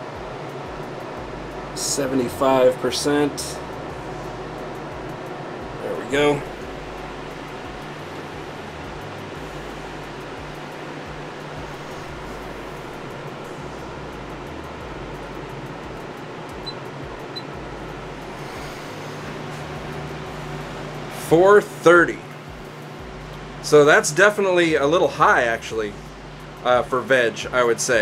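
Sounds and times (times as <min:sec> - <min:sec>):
low hum: 0:00.0 - 0:27.7
fan whooshing: 0:00.0 - 0:28.0.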